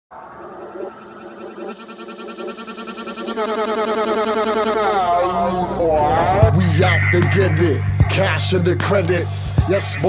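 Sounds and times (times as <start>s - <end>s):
warbling pitched sample: 0.1s - 8.6s
hip-hop track: 4.9s - 10.0s.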